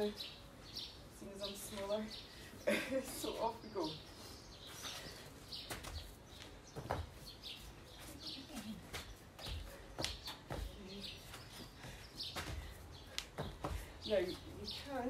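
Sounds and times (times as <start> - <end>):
small birds chirping: 0.0 - 15.0.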